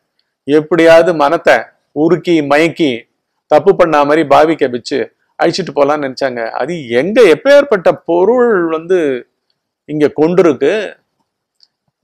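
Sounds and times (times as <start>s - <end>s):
man speaking: 0.5s - 9.2s, 9.9s - 11.0s.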